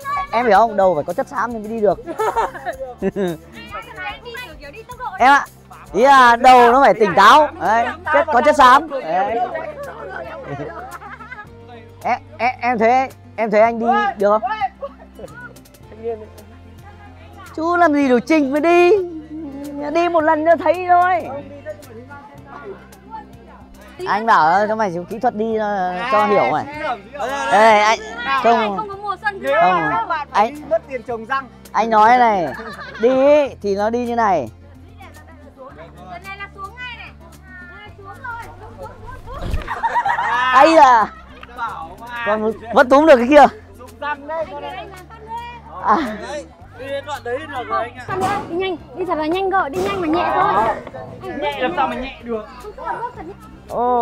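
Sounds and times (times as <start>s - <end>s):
people chattering: 0.0s - 12.0s, 14.8s - 20.6s, 34.7s - 54.0s
faint music: 0.0s - 54.0s.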